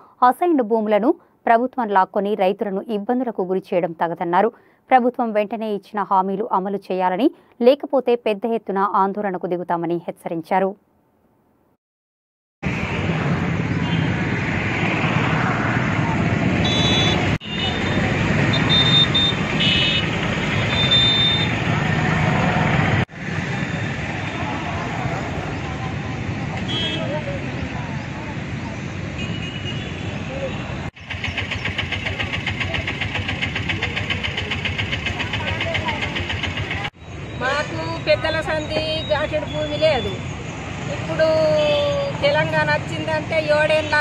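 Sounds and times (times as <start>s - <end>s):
passing vehicle traffic: 12.6s - 44.0s.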